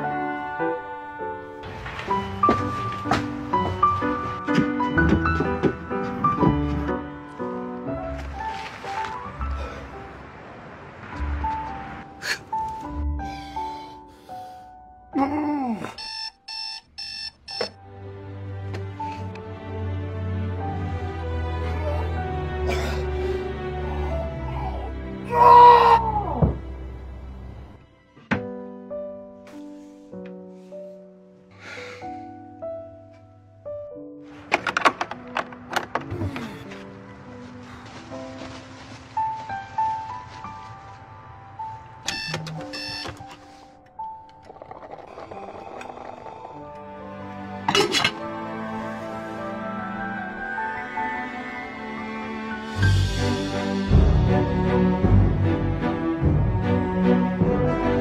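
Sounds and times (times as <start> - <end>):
soft background music: 0.0 - 58.0
digital alarm clock beeping: 16.0 - 17.8, 42.1 - 43.2.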